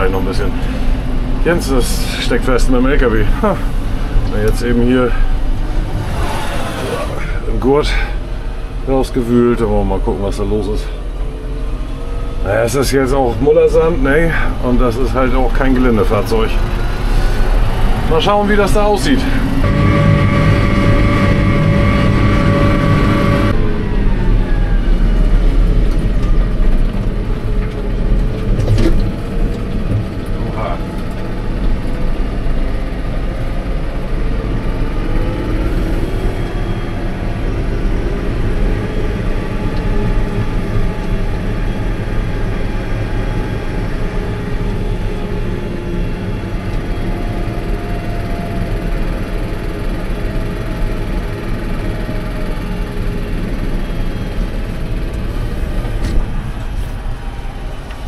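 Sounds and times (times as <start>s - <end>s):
tractor engine drone: 0.0s - 58.0s.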